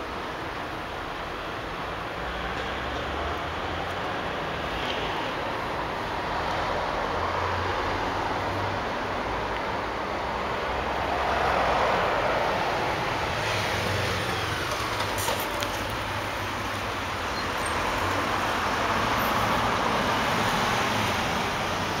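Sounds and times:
road traffic noise: 0:00.0 - 0:22.0.

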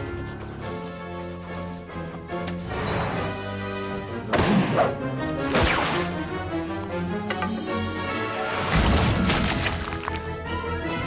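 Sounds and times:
action background music: 0:01.1 - 0:11.0.

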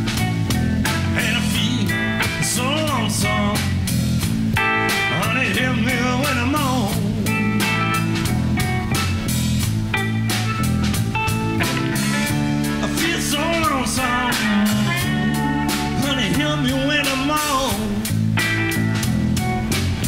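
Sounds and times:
blues band playing: 0:00.0 - 0:20.0
electric guitar bending notes: 0:00.0 - 0:20.0.

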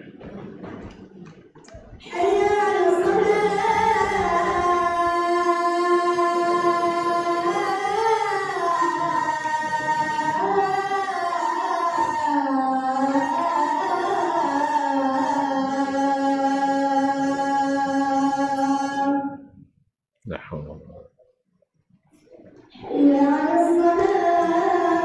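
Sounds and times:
person singing long notes: 0:02.0 - 0:19.5, 0:22.8 - 0:25.0.

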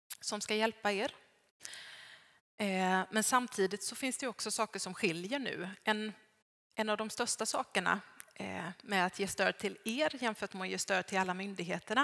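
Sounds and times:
woman speaking: 0:00.2 - 0:01.2, 0:02.6 - 0:06.2, 0:06.8 - 0:12.0
woman inhaling: 0:01.6 - 0:02.4.

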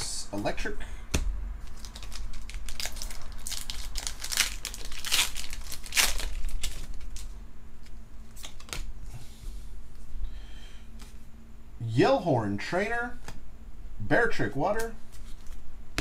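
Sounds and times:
foil wrapper tearing and crinkling: 0:01.6 - 0:07.4.

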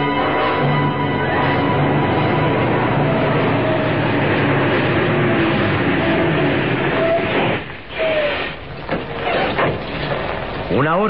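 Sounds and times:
heavy truck engine driving: 0:00.0 - 0:11.0.

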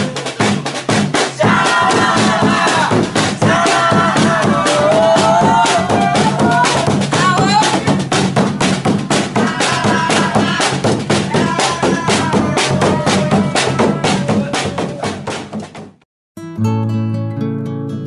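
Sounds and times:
large drum beaten fast: 0:00.0 - 0:16.0
group chanting: 0:01.1 - 0:15.5.

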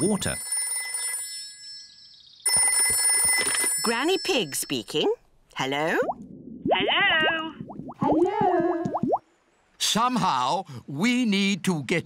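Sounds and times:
dial telephone bell ringing: 0:00.0 - 0:04.9.

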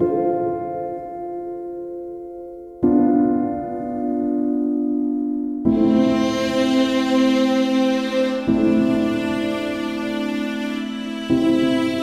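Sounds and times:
soft meditation music: 0:00.0 - 0:12.0.

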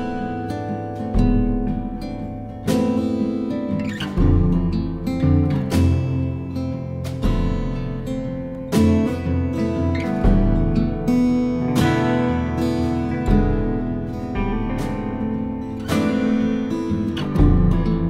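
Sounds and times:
plucked acoustic guitar music: 0:00.0 - 0:18.0.

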